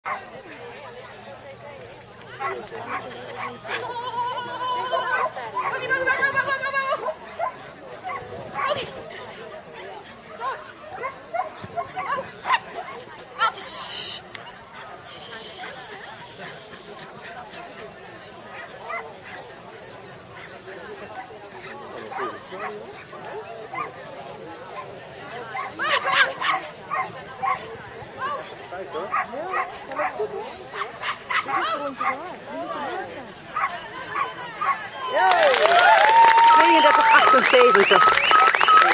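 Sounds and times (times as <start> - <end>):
dog barking: 29.1 - 30.2.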